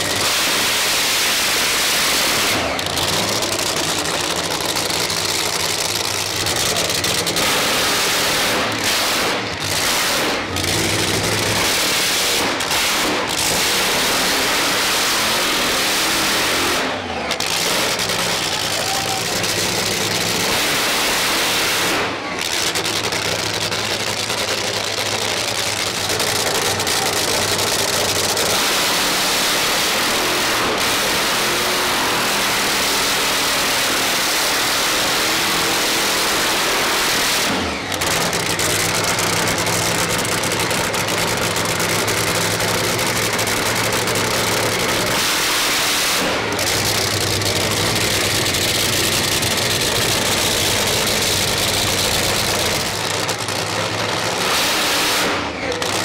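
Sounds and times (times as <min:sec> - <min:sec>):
dragster engine running hard: 0:00.0 - 0:56.0.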